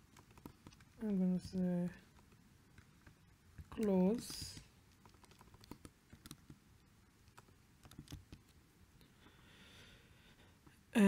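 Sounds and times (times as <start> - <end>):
faint keyboard typing: 0.0 - 8.6.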